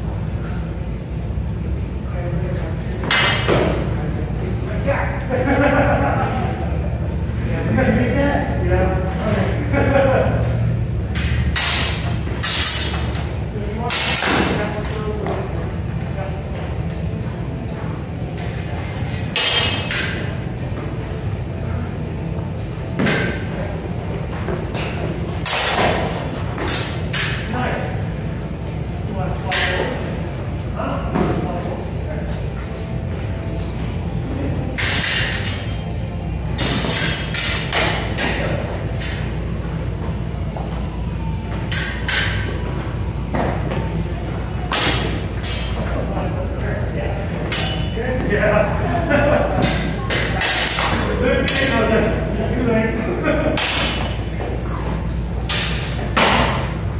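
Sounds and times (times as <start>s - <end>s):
steady low hum: 0.0s - 56.9s
training swords clashing: 11.2s - 15.0s, 19.1s - 20.3s, 25.4s - 27.5s, 29.5s - 30.0s, 34.7s - 35.9s, 36.6s - 39.3s, 41.7s - 42.5s, 44.7s - 46.0s, 47.4s - 48.3s, 49.6s - 52.3s, 53.5s - 54.8s, 55.4s - 56.8s.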